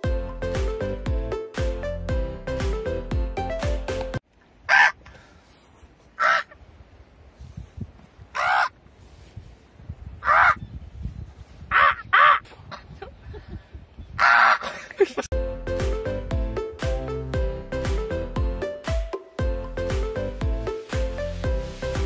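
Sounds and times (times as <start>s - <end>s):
background music: 0.0s - 4.2s, 15.3s - 22.0s
crow cawing: 4.7s - 5.2s, 6.2s - 6.6s, 8.3s - 8.7s, 14.2s - 14.6s
wind rumble on microphone: 6.6s - 14.6s.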